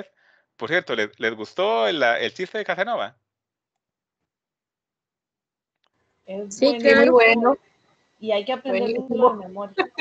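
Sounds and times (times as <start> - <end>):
person speaking: 6.5 - 7.6, 8.5 - 10.0.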